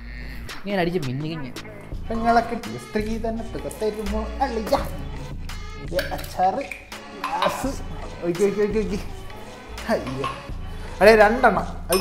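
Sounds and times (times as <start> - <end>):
background music: 0.0 - 12.0
dishware clinking: 6.0 - 8.2, 9.8 - 10.8.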